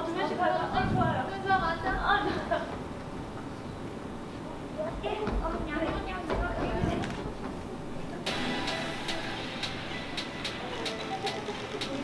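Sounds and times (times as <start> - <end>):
indistinct chatter of voices: 4.2 - 12.0.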